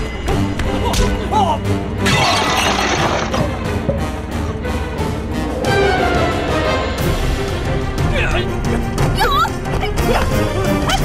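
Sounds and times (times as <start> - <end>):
dramatic orchestral score: 0.0 - 11.0
loud shattering crash: 2.1 - 3.4.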